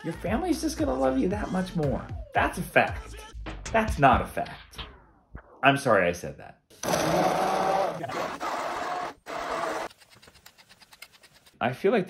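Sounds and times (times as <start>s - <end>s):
immersion blender motor whine: 6.8s - 9.9s.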